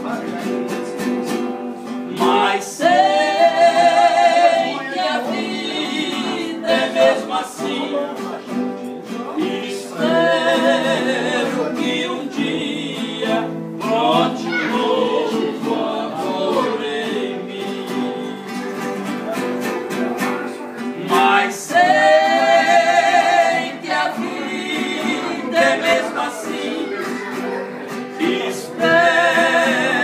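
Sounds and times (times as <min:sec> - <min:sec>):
strummed acoustic guitars: 0:00.0 - 0:30.0
two men singing: 0:01.9 - 0:08.4, 0:09.0 - 0:18.8, 0:20.9 - 0:27.3, 0:28.0 - 0:30.0.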